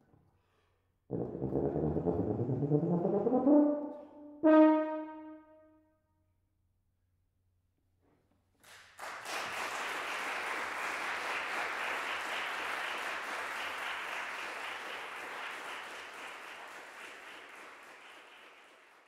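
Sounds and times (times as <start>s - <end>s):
audience applauding: 8.6s - 19.0s.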